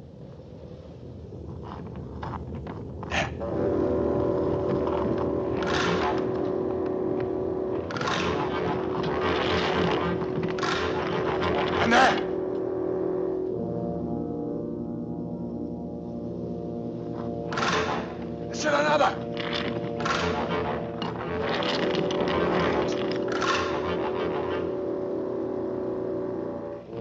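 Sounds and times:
orchestral film score: 3.0 - 27.0.

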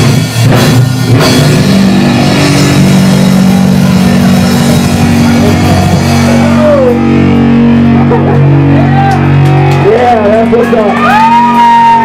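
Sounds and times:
metal band distorted guitar: 0.0 - 12.0.

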